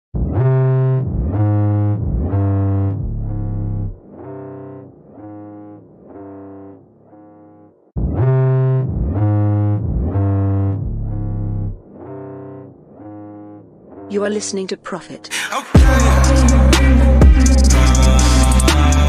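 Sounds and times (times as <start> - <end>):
deep bass: 0.2 - 4.7, 8.0 - 12.6, 15.8 - 19.0
repeating synthesizer chords: 0.2 - 14.7, 15.7 - 19.0.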